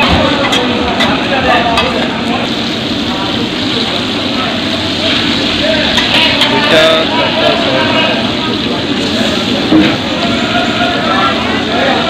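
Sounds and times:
fish sizzling in hot oil: 0.0 - 12.0
metal spatula scraping pan: 5.9 - 8.2.

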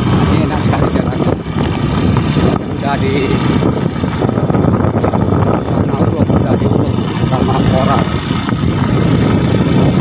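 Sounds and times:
motorbike engine rumble: 0.0 - 10.0
wind on microphone: 0.0 - 10.0.

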